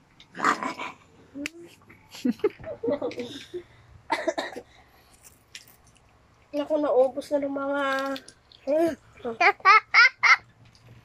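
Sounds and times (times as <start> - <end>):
person coughing: 4.1 - 4.7.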